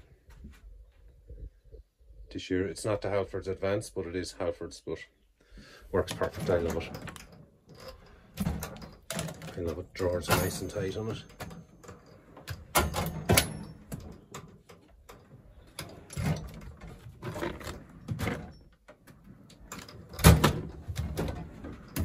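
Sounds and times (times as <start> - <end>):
metal drawers sliding and clunking: 6.1 - 22.0.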